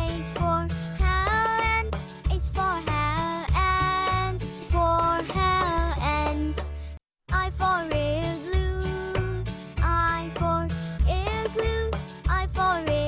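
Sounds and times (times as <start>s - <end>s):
backing track with bass line: 0.0s - 13.0s.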